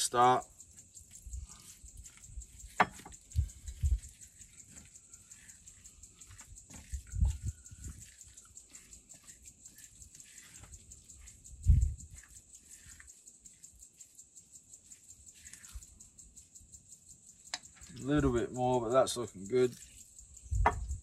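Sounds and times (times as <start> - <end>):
dough squelching in a bowl: 0.7 - 15.8, 19.3 - 20.2
dull thumps: 20.6 - 21.0.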